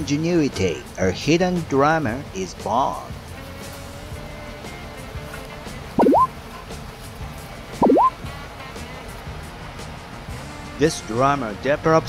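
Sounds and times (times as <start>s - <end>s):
quiet background music: 0.0s - 12.0s
cartoonish rising bloop: 6.0s - 6.3s, 7.8s - 8.2s.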